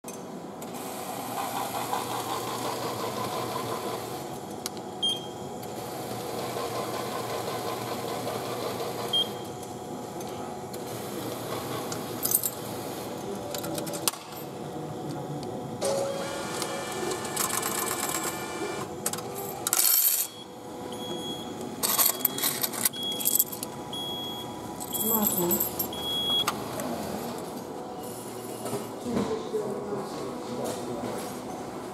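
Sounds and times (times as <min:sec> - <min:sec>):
machine mechanism whirring: 0:15.8 - 0:28.9
ticket and change clattering: 0:17.0 - 0:18.5, 0:19.1 - 0:20.4, 0:21.8 - 0:23.7, 0:24.8 - 0:26.4
coins dropping into slot: 0:19.6 - 0:20.4, 0:21.8 - 0:23.7, 0:24.8 - 0:26.0.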